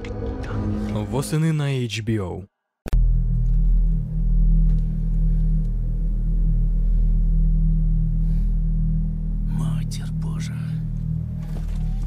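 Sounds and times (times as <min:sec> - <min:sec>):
deep low drone: 0:00.0 - 0:01.4, 0:02.9 - 0:12.0.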